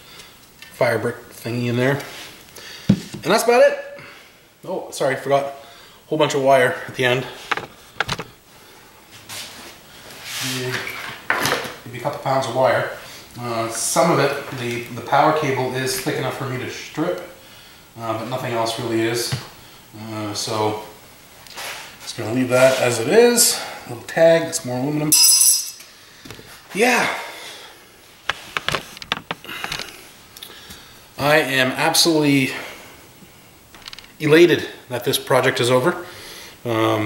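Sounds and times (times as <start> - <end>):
sharp clicks and knocks: 7.5 - 8.3, 28.3 - 29.9
sharp metal clank: 25.1 - 25.8.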